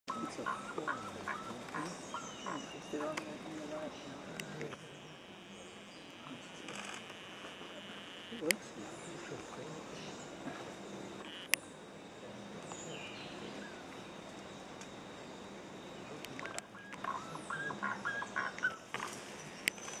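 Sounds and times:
forest birds calling: 0:00.1 - 0:20.0
steady background hiss: 0:00.1 - 0:20.0.

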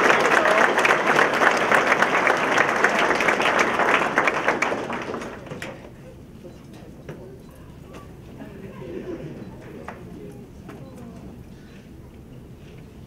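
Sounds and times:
audience applauding: 0:00.0 - 0:05.9.

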